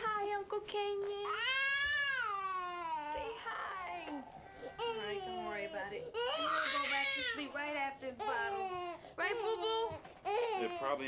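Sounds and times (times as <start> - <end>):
baby crying: 1.3 - 11.0.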